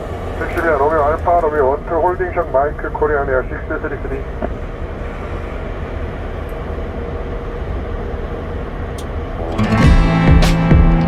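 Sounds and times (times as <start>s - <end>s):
low rumble of machinery: 0.0s - 11.0s.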